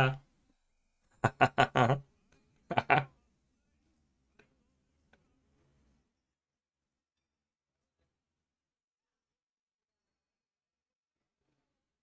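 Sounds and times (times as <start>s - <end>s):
man laughing: 1.2s - 2.1s, 2.7s - 3.2s.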